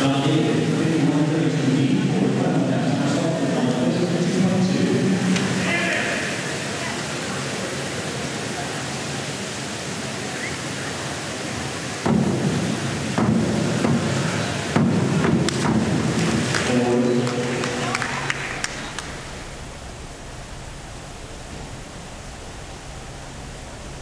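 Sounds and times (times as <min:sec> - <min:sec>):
crowd chatter: 0:00.0 - 0:12.0, 0:12.7 - 0:19.9
springboard knocks: 0:12.0 - 0:16.7.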